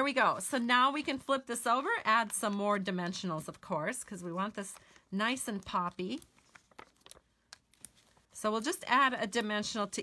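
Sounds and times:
cardstock rustling and ticking: 0:00.4 - 0:08.3.

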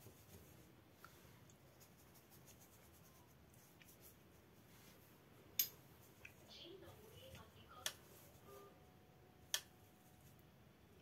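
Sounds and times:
paintbrush strokes on paper: 0:00.0 - 0:08.8, 0:09.8 - 0:10.5.

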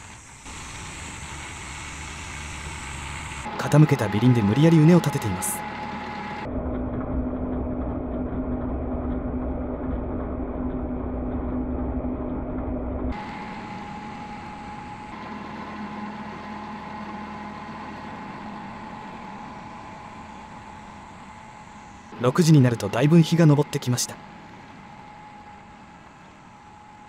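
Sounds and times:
tractor engine running: 0:00.0 - 0:23.8.

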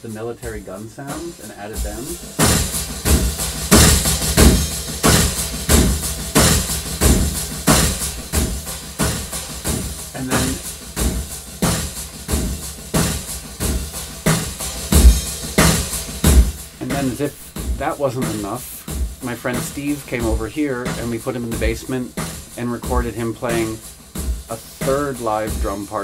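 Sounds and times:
drum loop with percussion: 0:00.0 - 0:26.0.

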